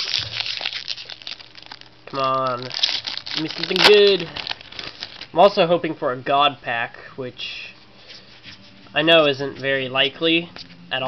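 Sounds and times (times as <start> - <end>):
foil wrapper crinkling: 0.0 - 5.4.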